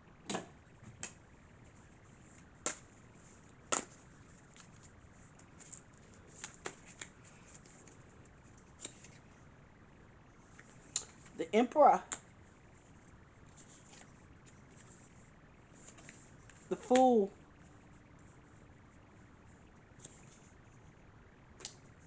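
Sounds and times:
playing cards snapping and clicking: 0.3s - 1.2s, 2.6s - 2.8s, 3.7s - 4.0s, 5.7s - 7.2s.

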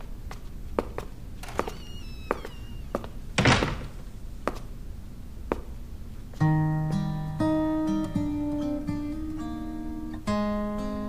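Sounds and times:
hard-soled footsteps on stone floor: 0.0s - 6.5s
high falling squeak: 1.4s - 4.1s
loud thump: 3.4s - 4.2s.

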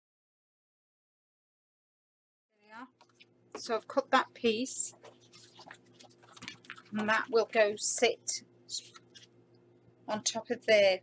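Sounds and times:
paper rustling: 4.8s - 7.7s, 8.8s - 9.3s.

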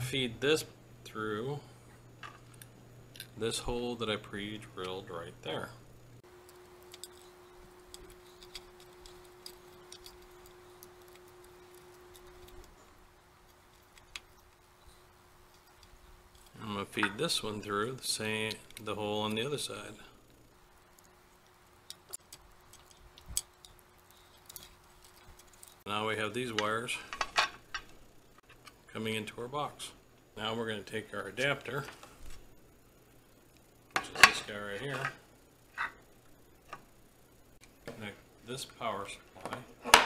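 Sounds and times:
faint steady hum: 0.0s - 40.0s.

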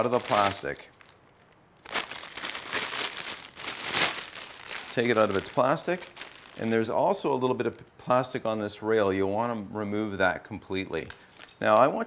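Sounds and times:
plastic bag crinkling: 0.0s - 7.8s.

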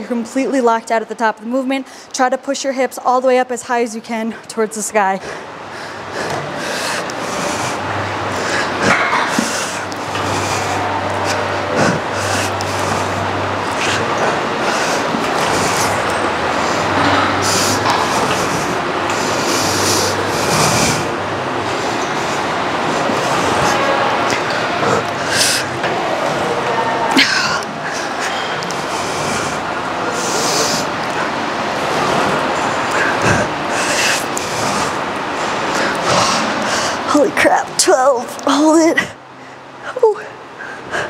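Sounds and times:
woman breathing heavily: 1.8s - 2.2s, 5.1s - 37.2s, 39.0s - 41.0s.

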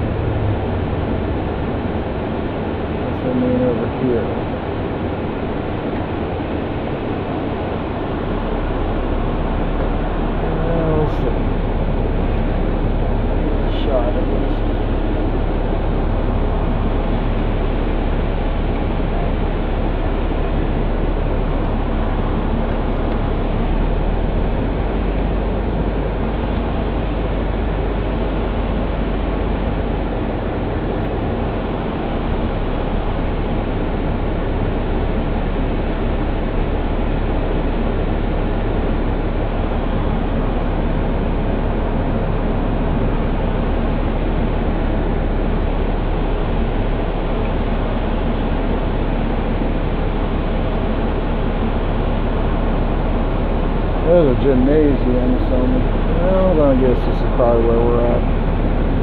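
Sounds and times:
coach engine and road rumble: 0.0s - 59.0s.

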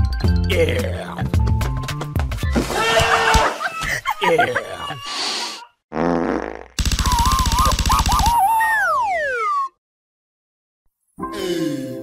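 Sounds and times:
cartoon fart sound effect: 5.9s - 7.3s
rapid buzzing with warbling tone: 6.8s - 8.3s.

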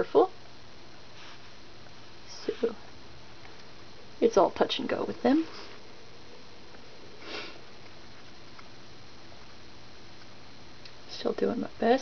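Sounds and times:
background hiss: 0.0s - 12.0s
person sniffing: 7.2s - 7.6s.

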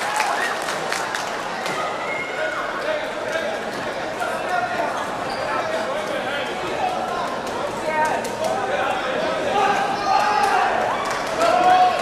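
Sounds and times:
voices calling out in a hall: 0.0s - 12.0s.

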